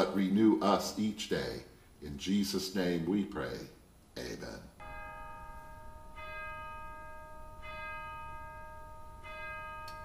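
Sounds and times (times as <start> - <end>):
bell ringing: 4.8 - 10.0.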